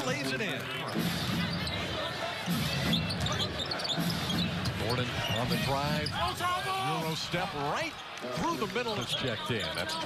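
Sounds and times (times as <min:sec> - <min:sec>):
arena crowd noise: 0:00.0 - 0:10.0
sneakers squeaking: 0:00.8 - 0:06.3, 0:08.8 - 0:10.0.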